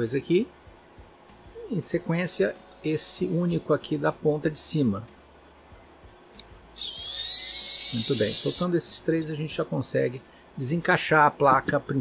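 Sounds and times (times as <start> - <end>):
electric screwdriver whine: 6.8 - 8.6.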